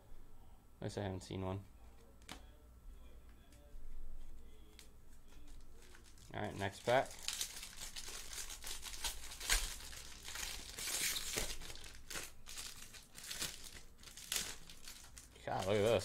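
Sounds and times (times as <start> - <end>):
foil wrapper crinkling and tearing: 5.3 - 16.0.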